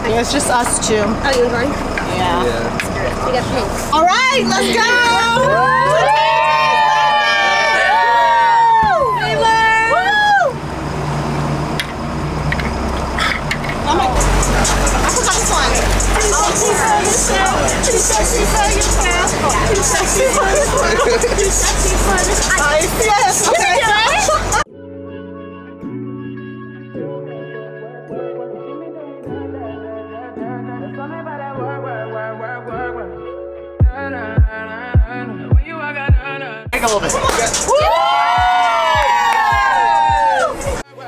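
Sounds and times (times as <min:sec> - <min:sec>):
voices chattering: 0:00.0 - 0:05.8, 0:13.2 - 0:24.7, 0:36.8 - 0:37.7
motorboat engine humming: 0:00.0 - 0:24.7
wind: 0:00.0 - 0:24.7
people cheering woo: 0:05.0 - 0:10.6, 0:37.3 - 0:40.8
boat wake rushing: 0:08.9 - 0:24.7
background music with steady beat: 0:14.1 - 0:24.6, 0:33.8 - 0:40.8.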